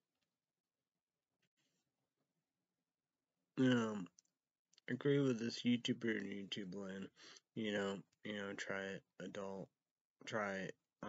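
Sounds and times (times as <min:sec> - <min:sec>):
man talking: 0:03.6 - 0:04.1, 0:04.9 - 0:09.7, 0:10.3 - 0:10.7.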